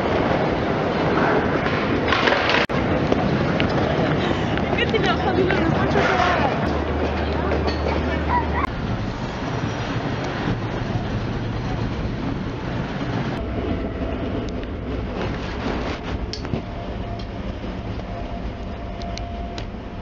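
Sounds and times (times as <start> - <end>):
train running rumble: 0.0 - 20.0.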